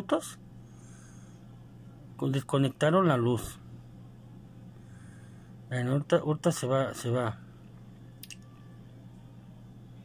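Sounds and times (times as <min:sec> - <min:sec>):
low steady hum: 0:00.0 - 0:10.0
computer mouse clicks: 0:08.2 - 0:08.5.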